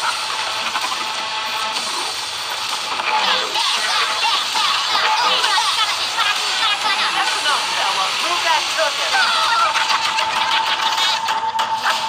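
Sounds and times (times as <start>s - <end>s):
rapid mechanical clatter: 0.0s - 12.0s.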